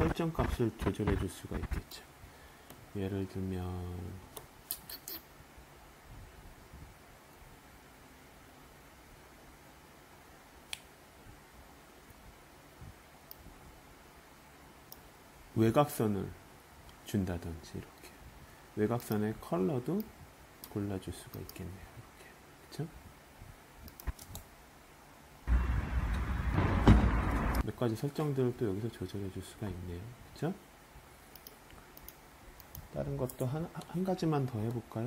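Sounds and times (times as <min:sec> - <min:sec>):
faint hiss: 0:00.0 - 0:35.0
noisy outdoor ambience with low rumble: 0:00.0 - 0:35.0
computer mouse click: 0:23.9 - 0:24.5, 0:31.3 - 0:33.9
sharp knock: 0:25.5 - 0:27.6.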